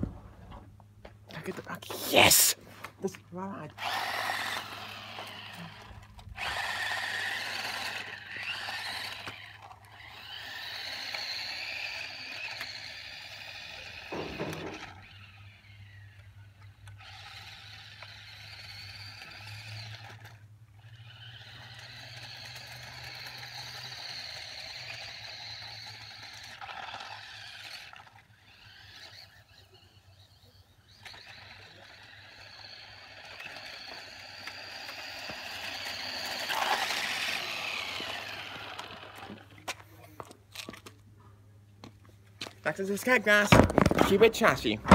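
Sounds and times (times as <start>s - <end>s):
toy car motor whining: 1.8s - 2.6s, 3.7s - 40.9s.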